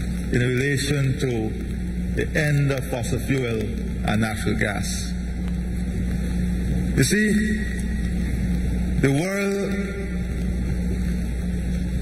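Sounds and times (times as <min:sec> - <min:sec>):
low hum and drone: 0:00.0 - 0:12.0.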